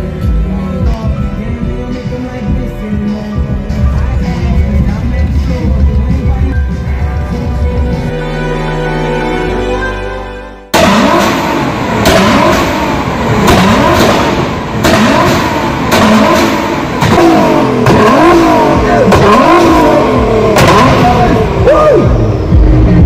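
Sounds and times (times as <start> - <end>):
car engine revving hard: 10.7 - 23.0
exhaust cracks: 10.8 - 23.0.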